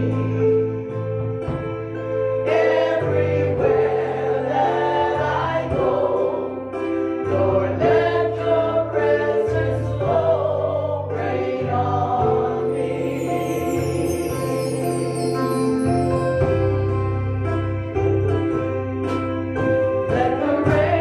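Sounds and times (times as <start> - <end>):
electric keyboard chords: 0.0 - 21.0
voices singing: 2.5 - 6.7, 7.3 - 15.8.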